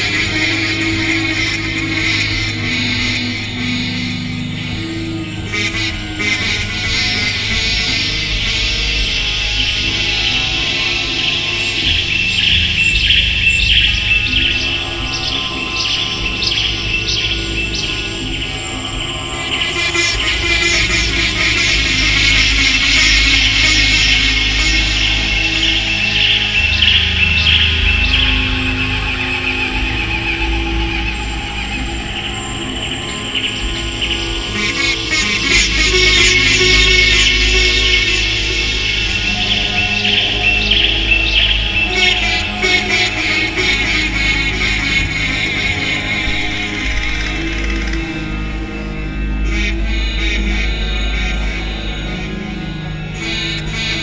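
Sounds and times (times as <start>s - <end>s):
low steady drone: 0.0s - 54.0s
sitar plucked notes: 0.0s - 54.0s.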